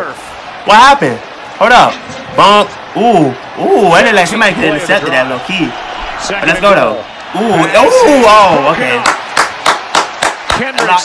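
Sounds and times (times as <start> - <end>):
man clapping hands: 9.0 - 11.0.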